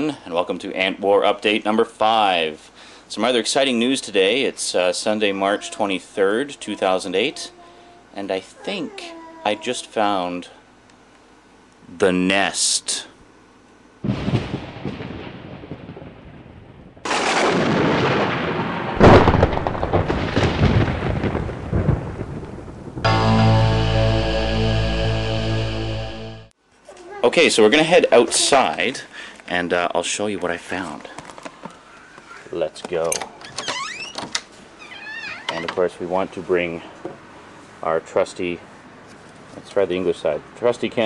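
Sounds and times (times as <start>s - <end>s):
booming crashes with rolling rumbles: 14.0s - 24.2s
squeaking door hinges: 33.0s - 35.8s.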